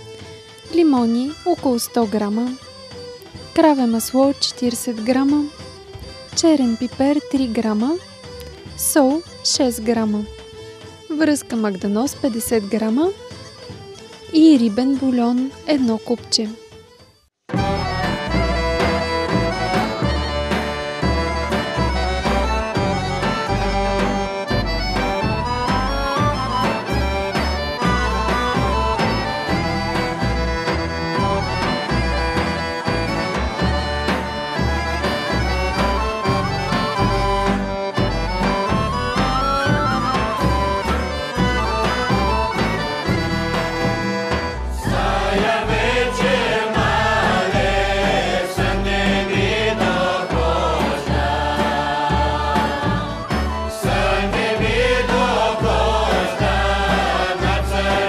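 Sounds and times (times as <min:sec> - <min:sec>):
bagpipes: 0:16.7 - 0:58.0
women's choir singing: 0:44.8 - 0:58.0.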